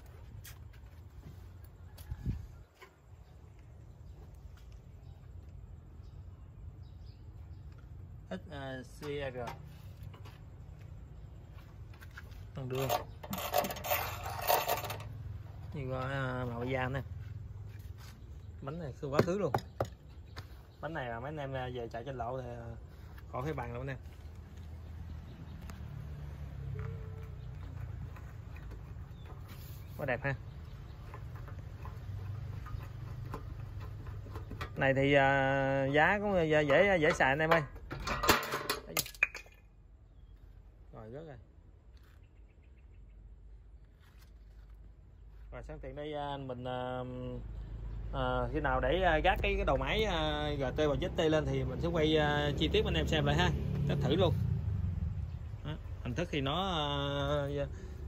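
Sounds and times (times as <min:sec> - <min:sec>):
hand scraping rubber tyre tread: 0:09.6 - 0:15.2, 0:26.6 - 0:35.1.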